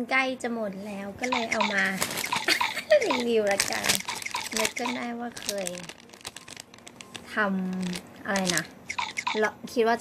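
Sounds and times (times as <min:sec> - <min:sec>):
person speaking: 0:00.7 - 0:06.0, 0:07.2 - 0:10.0
plastic snack bag crinkling: 0:01.7 - 0:08.8.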